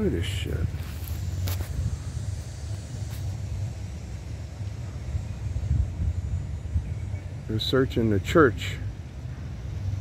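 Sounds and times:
low street background rumble: 0:00.0 - 0:10.0.

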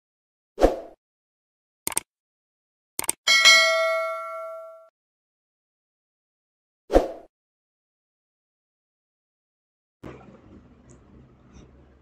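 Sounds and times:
click sound effects: 0:01.9 - 0:02.1, 0:03.0 - 0:03.2
bright bell ding: 0:03.3 - 0:04.9.

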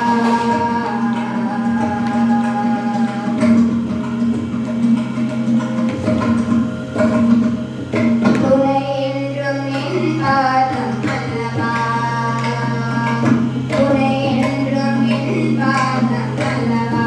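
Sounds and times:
devotional singing: 0:00.0 - 0:03.6.

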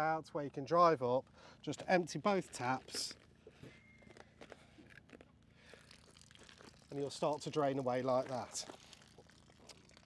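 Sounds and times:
shoes shifting on gravel: 0:01.7 - 0:09.0.

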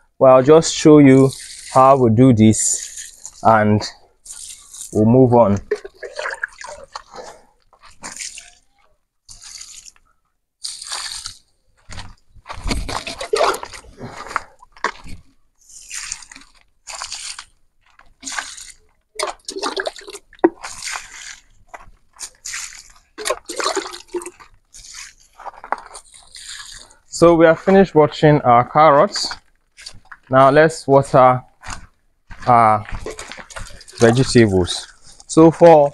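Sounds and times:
liquid splashing onto soil: 0:01.0 - 0:10.0, 0:10.6 - 0:27.0, 0:32.9 - 0:35.2.

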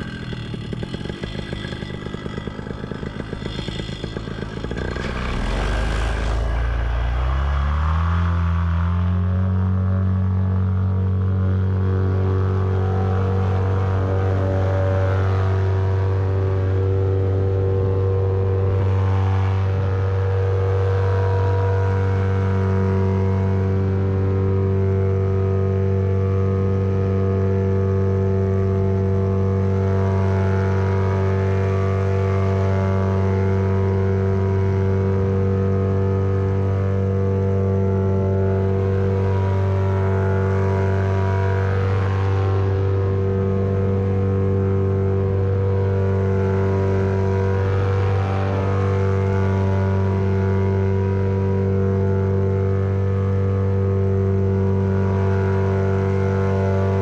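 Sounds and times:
paramotor engine droning: 0:00.0 - 0:57.0.

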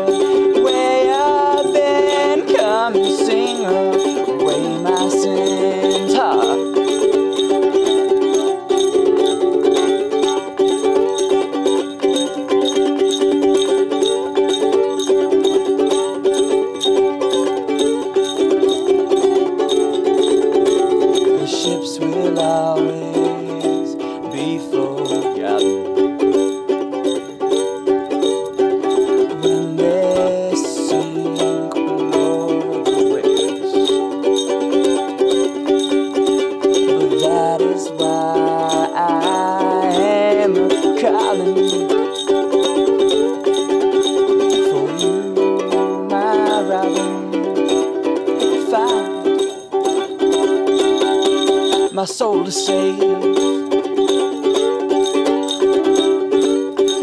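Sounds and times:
ukulele strumming: 0:00.0 - 0:57.0.

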